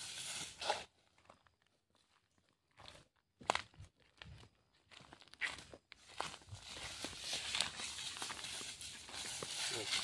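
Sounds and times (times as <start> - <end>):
footsteps crunching dry leaves: 0.0 - 10.0.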